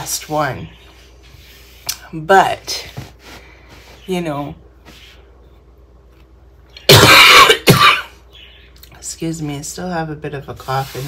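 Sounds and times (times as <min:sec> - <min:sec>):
woman coughing harshly: 0:06.9 - 0:08.2.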